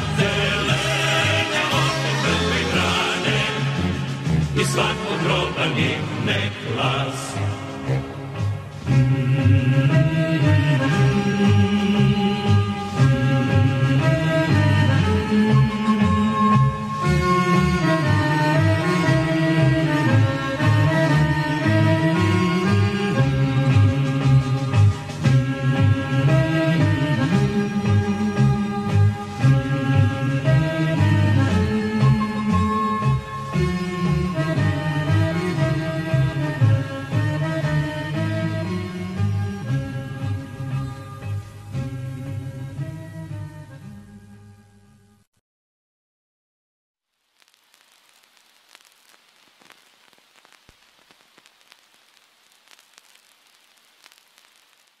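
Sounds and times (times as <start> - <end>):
old film crackling hiss: 0.0 - 43.9, 47.0 - 55.0
sharp clicks and pops: 47.2 - 55.0.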